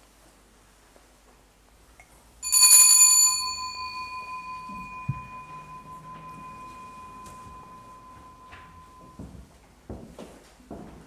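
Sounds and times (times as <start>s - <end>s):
bell strike ringing: 2.4s - 9.3s
soft low knock: 4.7s - 11.0s.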